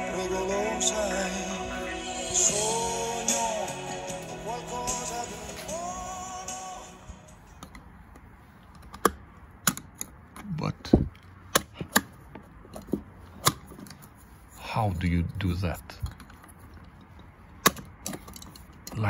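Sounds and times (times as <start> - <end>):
background music: 0.0 - 7.9.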